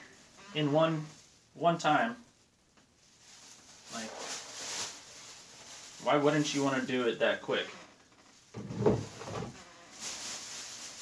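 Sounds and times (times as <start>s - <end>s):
plastic bag rustling: 3.0s - 11.0s.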